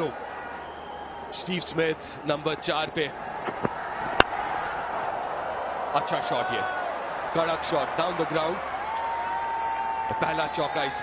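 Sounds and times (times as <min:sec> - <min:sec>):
cricket bat striking ball: 0:03.4 - 0:04.4.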